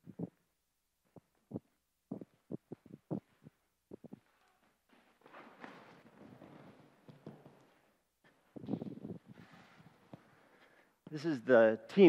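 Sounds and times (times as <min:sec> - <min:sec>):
soft low thuds: 0:01.0 - 0:04.2.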